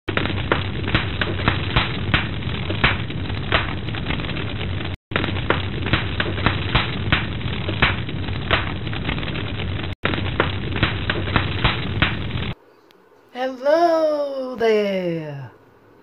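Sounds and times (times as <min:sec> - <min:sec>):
noisy rumble: 0:00.1 - 0:12.7
sharp pops and crackles: 0:00.1 - 0:13.0.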